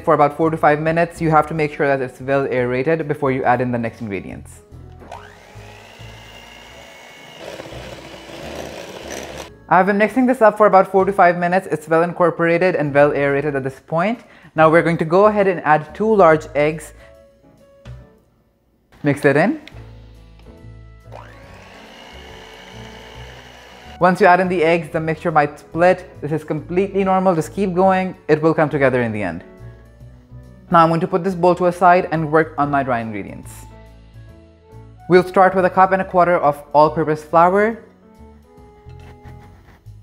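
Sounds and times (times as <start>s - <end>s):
soft background music: 0.0s - 40.0s
electric hand mixer whining: 5.0s - 9.5s, 21.0s - 24.0s.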